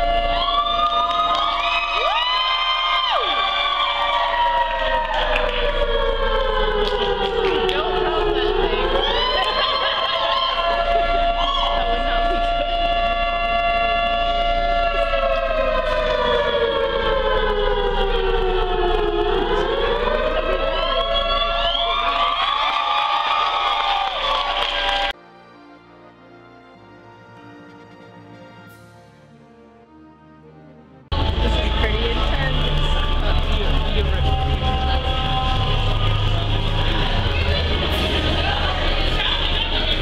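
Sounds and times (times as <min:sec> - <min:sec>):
air-raid siren winding down: 0:00.0 - 0:25.1, 0:31.1 - 0:40.0.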